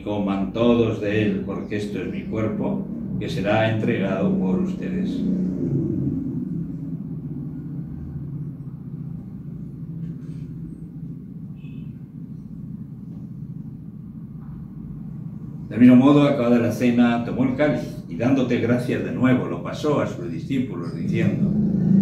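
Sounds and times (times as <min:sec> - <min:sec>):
low rumbling hum: 0:00.0 - 0:22.0.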